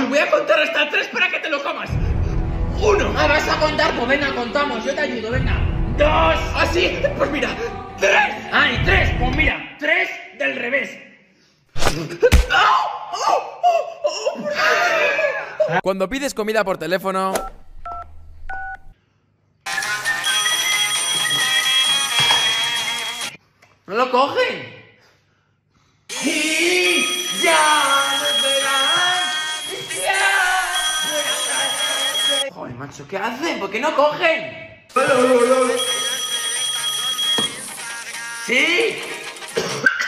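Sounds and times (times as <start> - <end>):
phone ringback music: 20.2 - 23.3, 26.1 - 32.5, 35.0 - 39.4
smartphone beeps: 27.0 - 32.5, 35.0 - 38.0.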